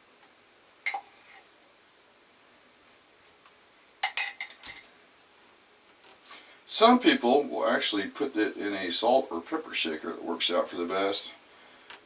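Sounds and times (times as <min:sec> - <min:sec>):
metal spoon clinking on mug: 0:00.9 - 0:01.4, 0:04.0 - 0:04.9.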